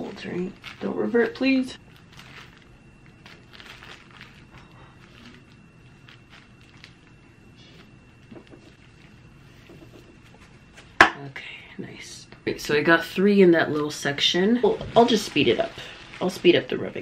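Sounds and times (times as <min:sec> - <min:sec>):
hair and fabric rustling: 0:00.0 - 0:08.0, 0:13.6 - 0:17.0.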